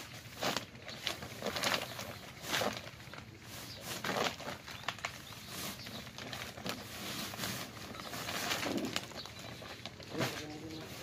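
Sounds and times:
plastic sack rustling: 0.0 - 11.0.

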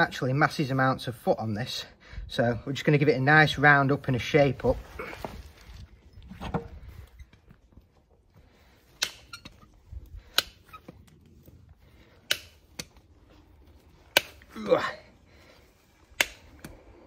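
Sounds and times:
hoof nippers snapping through hoof: 8.9 - 11.3, 12.2 - 13.0, 16.1 - 16.8.

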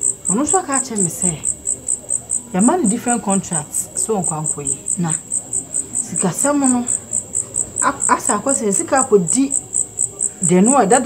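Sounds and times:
cricket chirping: 0.0 - 11.0
people speaking: 0.0 - 11.0.

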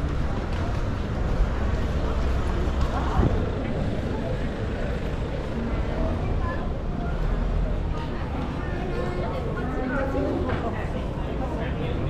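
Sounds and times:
chatter of passers-by: 0.0 - 12.0.

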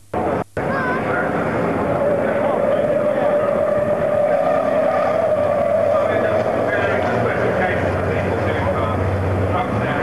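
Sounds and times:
steady high whine: 0.0 - 10.0
racing truck engines running hard: 0.2 - 10.0.

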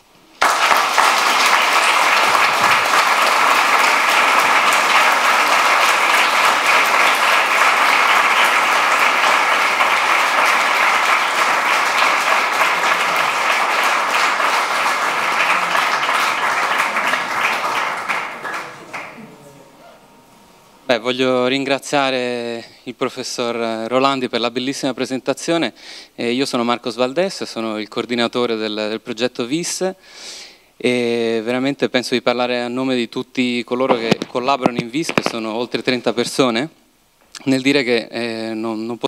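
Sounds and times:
audience applauding: 0.4 - 20.2, 33.9 - 36.5.

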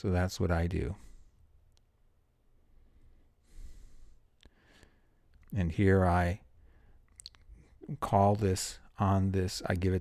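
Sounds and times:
soft breath into microphone: 0.9 - 1.5, 2.6 - 5.3, 6.5 - 7.8.

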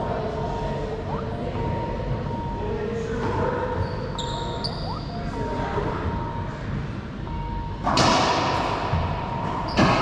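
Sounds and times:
steady background noise: 0.0 - 10.0
sneakers squeaking on hardwood floor: 3.7 - 5.2.

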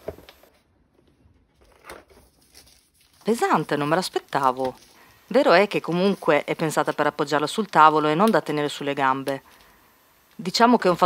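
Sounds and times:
plastic sleeve rustling: 0.0 - 8.3.

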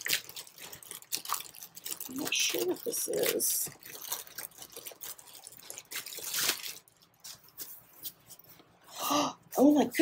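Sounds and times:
packaging rustling and crinkling: 0.0 - 8.7.

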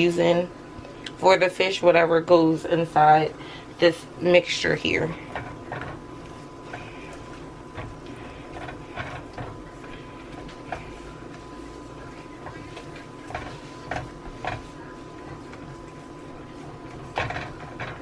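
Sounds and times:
spatula scraping pan: 4.5 - 18.0.

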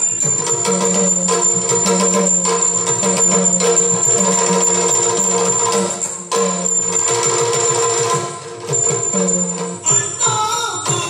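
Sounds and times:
jingling percussion: 0.0 - 11.0
rapid drum strokes: 0.0 - 11.0.

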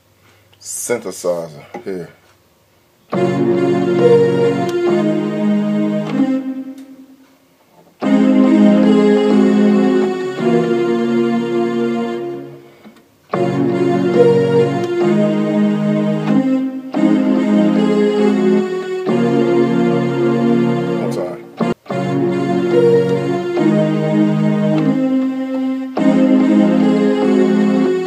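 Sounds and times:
synthesizer chords: 3.1 - 7.3, 8.0 - 28.0.

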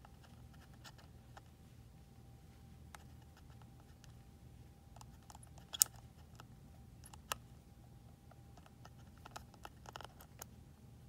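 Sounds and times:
plastic clicking and scraping: 8.6 - 10.5.

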